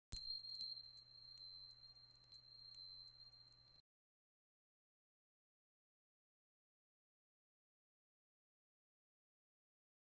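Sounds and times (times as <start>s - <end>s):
light tinkling strikes: 0.1s - 3.8s
high ringing chime tone: 0.2s - 3.8s.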